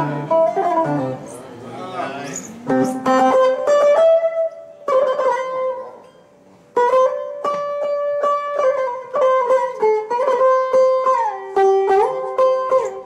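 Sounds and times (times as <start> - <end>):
plucked lute melody: 0.0 - 13.0.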